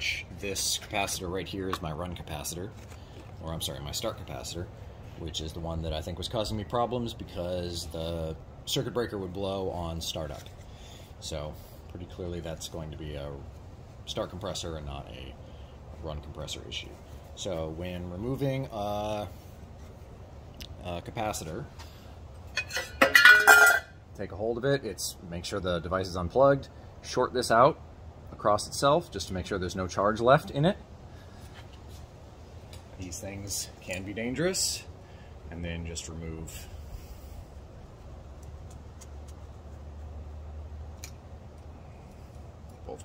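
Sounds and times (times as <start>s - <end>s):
low steady background rumble: 0.0s - 43.0s
scraping clinking rattle: 22.5s - 23.9s.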